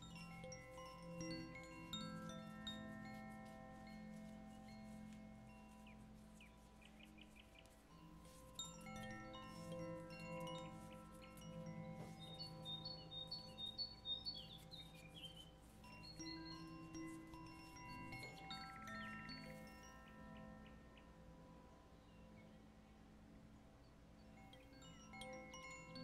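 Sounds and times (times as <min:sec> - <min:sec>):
soft held tones: 0:00.0 - 0:21.8
wind chimes ringing: 0:00.0 - 0:23.1, 0:24.2 - 0:26.0.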